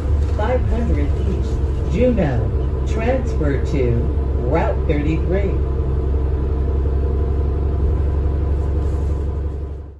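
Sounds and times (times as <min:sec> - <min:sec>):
bus engine rumble: 0:00.0 - 0:09.9.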